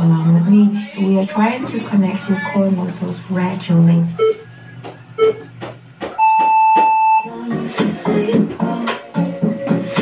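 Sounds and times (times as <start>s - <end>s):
electronic beep: 4.2s - 5.5s, 6.2s - 7.3s.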